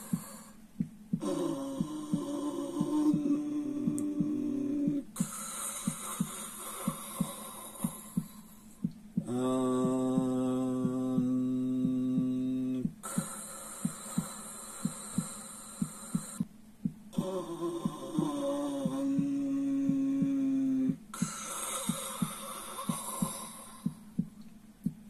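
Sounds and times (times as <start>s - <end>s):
high hiss: 0.0s - 16.5s
fast ticking pulse: 0.0s - 24.3s
low voice chanting one note: 1.2s - 5.3s, 9.2s - 13.0s, 17.1s - 21.2s.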